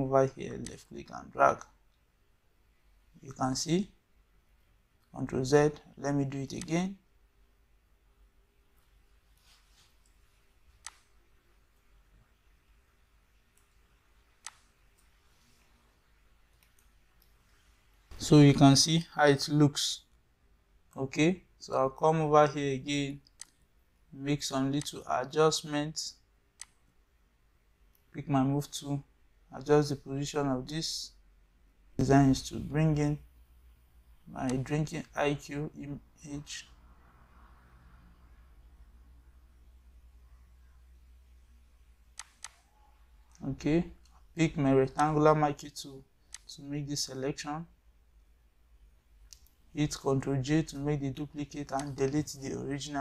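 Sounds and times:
faint low hum: 0.0s - 53.0s
computer mouse clicks: 10.8s - 11.1s, 42.2s - 42.7s, 46.3s - 46.5s.

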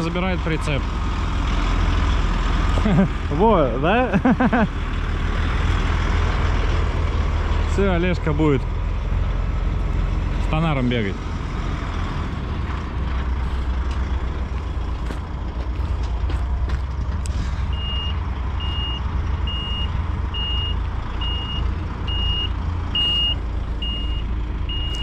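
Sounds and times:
truck diesel engine: 0.0s - 25.0s
reversing alarm beeps: 17.7s - 25.0s.

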